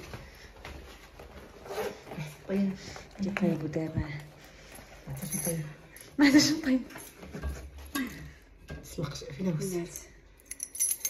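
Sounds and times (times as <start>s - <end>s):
metal keys jangling: 5.1s - 6.1s, 10.4s - 11.0s.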